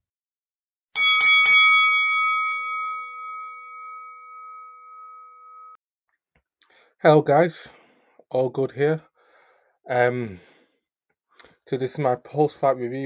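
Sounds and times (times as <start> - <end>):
boxing ring bell: 1.0 - 5.8.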